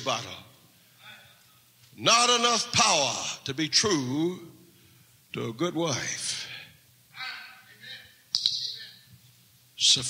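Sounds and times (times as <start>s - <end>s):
sharp click: 8.3s - 8.8s.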